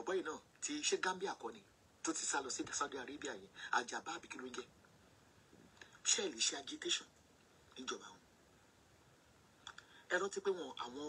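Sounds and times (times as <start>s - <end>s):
person speaking: 0.0s - 4.7s, 5.8s - 7.1s.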